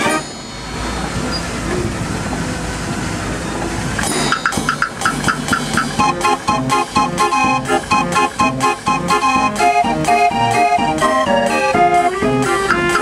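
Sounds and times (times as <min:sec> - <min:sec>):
outdoor background rumble: 0:00.0 - 0:13.0
street organ staccato chords: 0:01.5 - 0:13.0.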